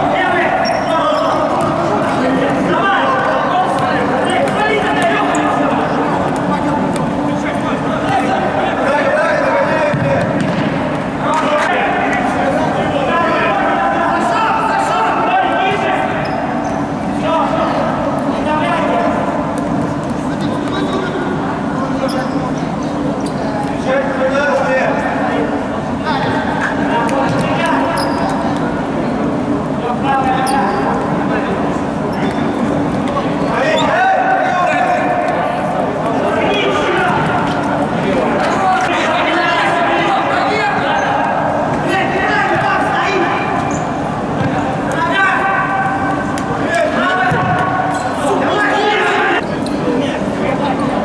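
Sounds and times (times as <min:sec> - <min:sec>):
ball kicked and bouncing: 0:09.9 - 0:10.8, 0:47.3 - 0:47.7.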